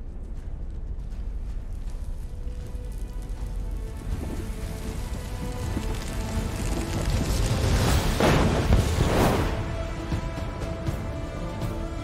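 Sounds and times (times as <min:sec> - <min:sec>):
grit and small stones crackling: 0:00.0 - 0:09.7
deep rumble: 0:00.0 - 0:10.1.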